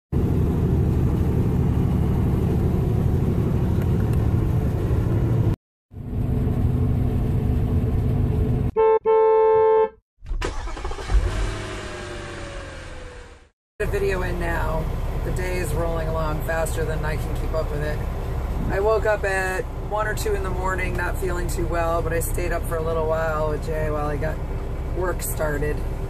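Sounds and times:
vehicle rumbling on road: 0.2s - 9.8s, 11.1s - 26.0s
car horn blasts: 8.7s - 10.0s
traffic noise: 12.3s - 26.0s.

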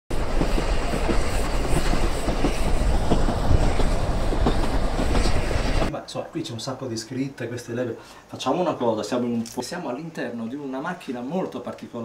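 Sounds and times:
train rumbling along track: 0.1s - 5.9s
wheels clicking on rails: 0.1s - 5.9s.

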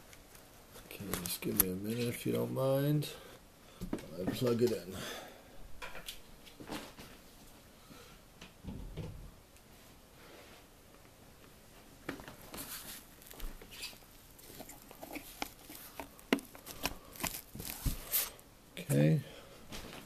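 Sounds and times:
cord handling rustling: 12.2s - 18.4s.

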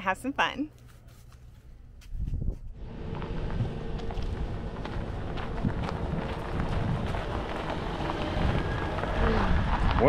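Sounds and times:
wind buffeting microphone: 2.2s - 10.0s
tyres crunching on gravel: 2.8s - 10.0s.

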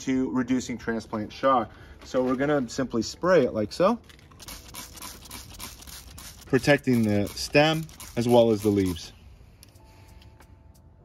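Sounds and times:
spray bottle hissing: 4.4s - 9.2s.

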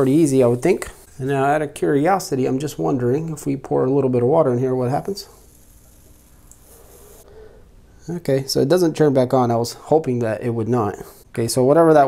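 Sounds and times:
water hissing on hot plate: 0.0s - 1.2s, 4.9s - 7.3s.

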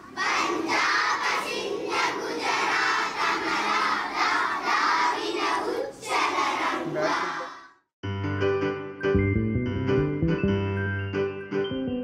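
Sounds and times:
children chanting in unison: 0.0s - 7.8s
soft piano-like tune: 8.1s - 12.0s.

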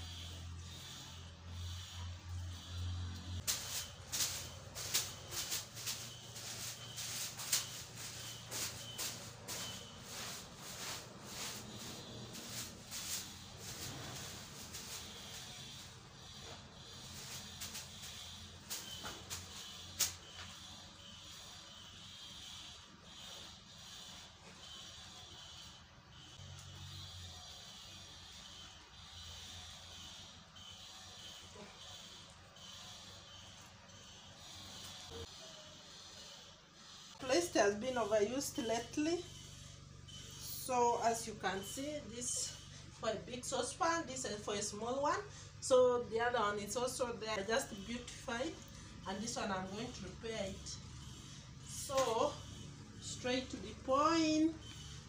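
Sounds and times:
dry grass brushing over stove: 3.4s - 20.2s.

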